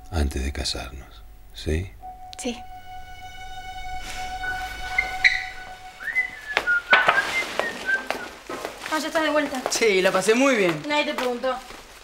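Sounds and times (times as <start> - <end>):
held music notes: 0.0 - 9.4
person whistling a tune: 4.4 - 8.4
knocks and plastic rustling: 6.6 - 12.0.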